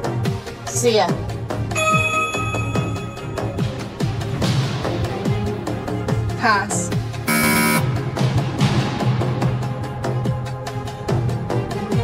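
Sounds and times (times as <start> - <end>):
game show music with beat: 0.0 - 11.8
harsh electronic buzzer: 7.3 - 7.8.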